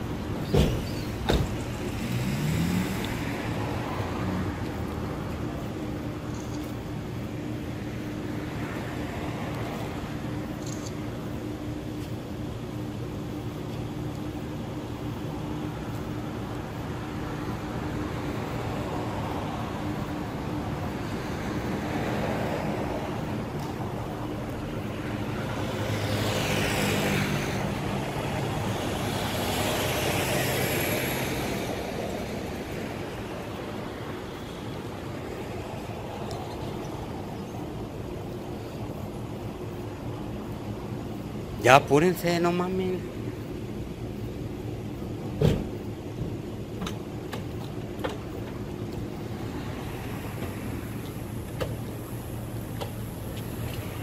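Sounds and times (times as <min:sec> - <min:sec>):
vehicles passing by: 0:00.0 - 0:54.0.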